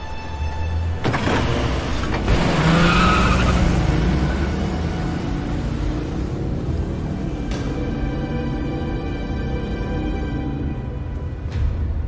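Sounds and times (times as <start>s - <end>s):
car accelerating hard: 1.1s - 7.2s.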